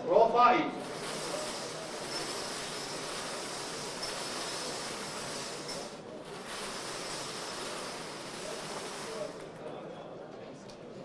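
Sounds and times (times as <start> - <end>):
balls rattling in wire cage: 0.8 - 9.7.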